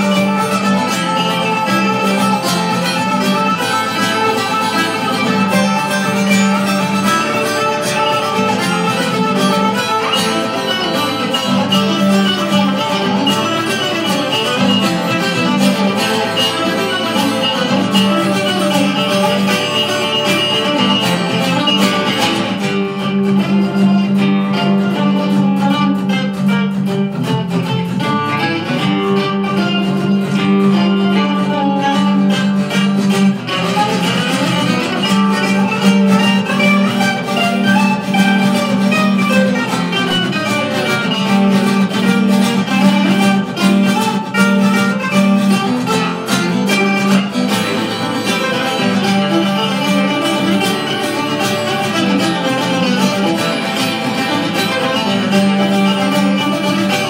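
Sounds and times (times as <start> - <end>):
acoustic guitar accompaniment: 0.0 - 57.0
mandolin plucked melody: 0.0 - 57.0.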